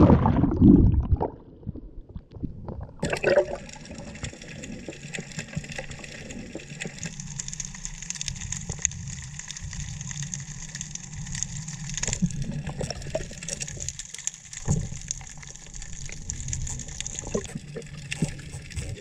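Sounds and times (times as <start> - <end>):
underwater crackle and hum: 0.0 - 19.0.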